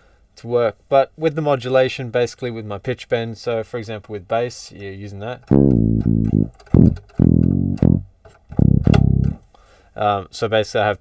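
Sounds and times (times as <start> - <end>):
plucked electric bass notes: 5.4 - 9.4.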